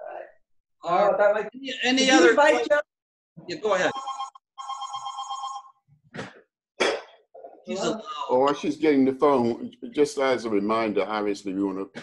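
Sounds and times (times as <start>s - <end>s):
telephone ringing: 3.8s - 5.8s.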